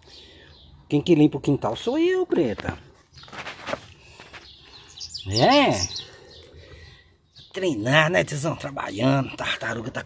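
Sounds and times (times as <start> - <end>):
birds chirping faintly: 0.0 - 10.0.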